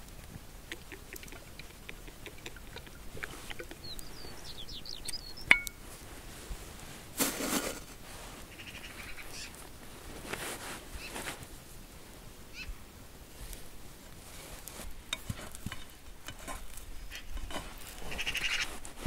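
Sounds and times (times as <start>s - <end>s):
rustling: 0.0s - 12.1s, 13.4s - 19.0s
bird chirping: 1.6s - 5.8s.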